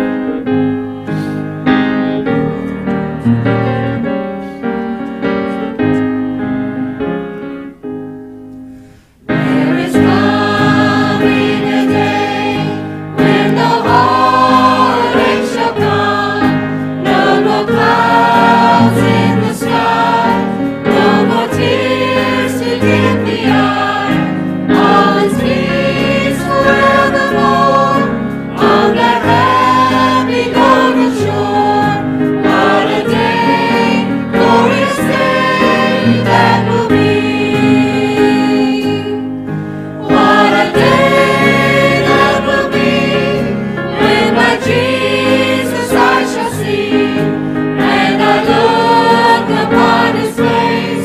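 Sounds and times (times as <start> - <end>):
held instrumental notes: 0.0 - 51.0
mixed choir singing: 9.3 - 51.0.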